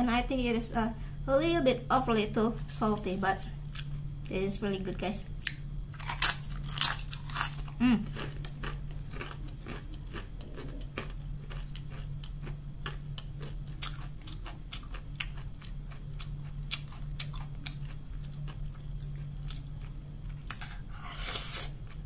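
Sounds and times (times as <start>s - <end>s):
close chewing of food: 5.4s - 22.0s.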